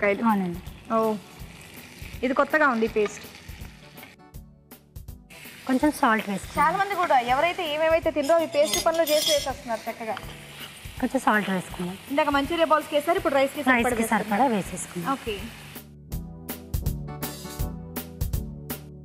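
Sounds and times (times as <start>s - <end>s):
vegetables frying in a pan: 0.0s - 4.2s, 5.3s - 15.8s
instrumental music with drums: 0.7s - 19.0s.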